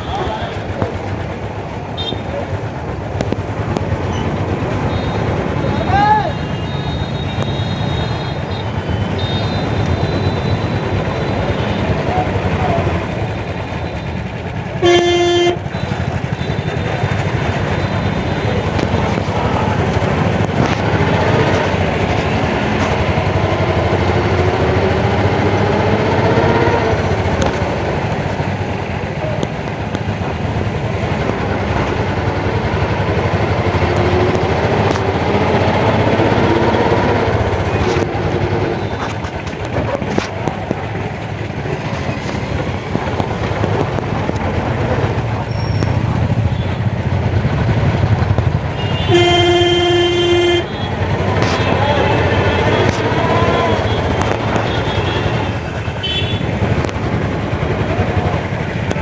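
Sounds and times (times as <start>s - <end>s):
street traffic rumble: 0.0s - 59.0s
vehicle horn blast: 14.8s - 16.7s, 48.8s - 56.5s.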